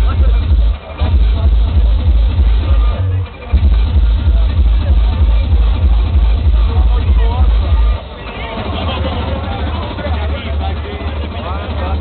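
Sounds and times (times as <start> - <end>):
hard-dance music with bass kick: 0.0 - 12.0.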